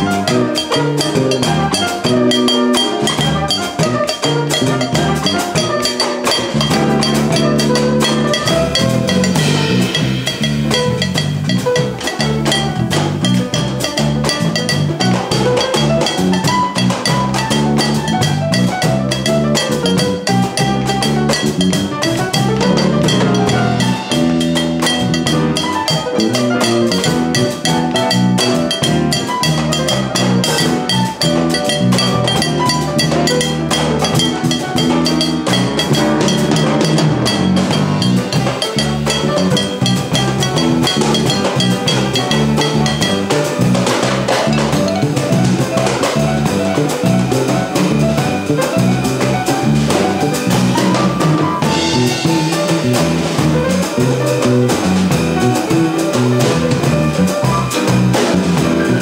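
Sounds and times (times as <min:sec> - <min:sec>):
cajon percussion: 0:00.0 - 0:59.0
drum kit: 0:00.0 - 0:59.0
piano chords and runs: 0:00.0 - 0:59.0.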